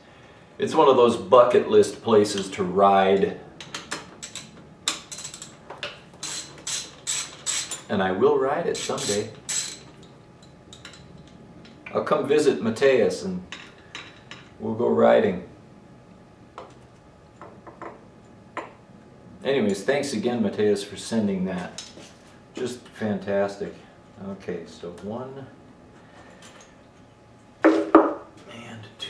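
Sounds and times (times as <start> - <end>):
ratchet wrench clicking: 6.2 - 7.9, 8.7 - 9.9.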